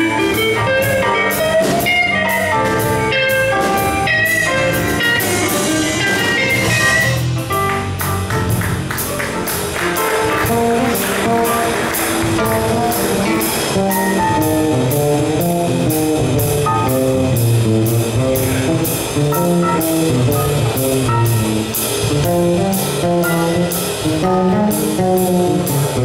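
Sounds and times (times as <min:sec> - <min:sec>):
guitar melody: 0:00.0 - 0:15.5, 0:17.9 - 0:22.2
jazz band playing: 0:00.0 - 0:26.0.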